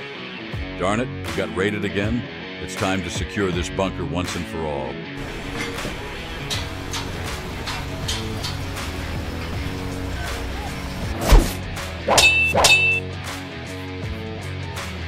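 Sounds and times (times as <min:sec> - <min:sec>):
background music: 0:00.0 - 0:15.0
ringing metal clangs: 0:05.2 - 0:10.7, 0:12.1 - 0:13.0
heavy thud: 0:11.0 - 0:11.8.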